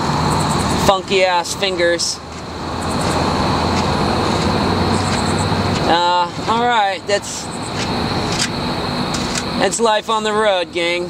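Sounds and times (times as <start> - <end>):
road traffic passing close: 0.0 - 11.0.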